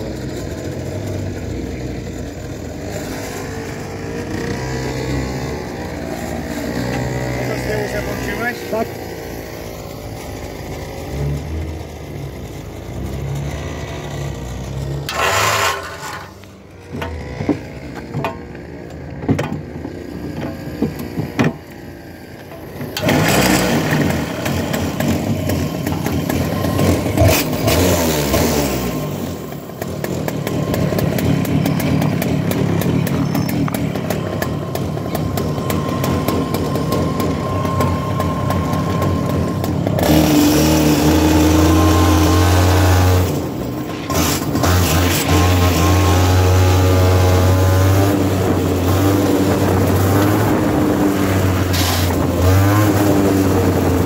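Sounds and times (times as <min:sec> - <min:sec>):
kart engine revving: 0:00.0 - 0:54.0.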